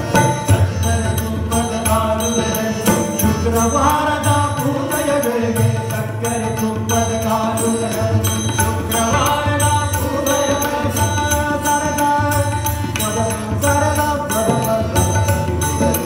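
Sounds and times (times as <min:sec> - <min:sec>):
harmonium: 0:00.0 - 0:16.0
man singing: 0:00.0 - 0:16.0
tabla rhythm: 0:00.0 - 0:16.0
tanpura drone: 0:00.0 - 0:16.0.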